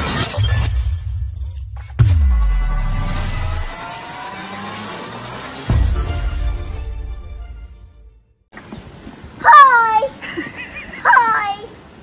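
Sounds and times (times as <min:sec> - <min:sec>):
heavy hit: 0:00.9 - 0:03.9
deep bass drone: 0:00.9 - 0:08.2.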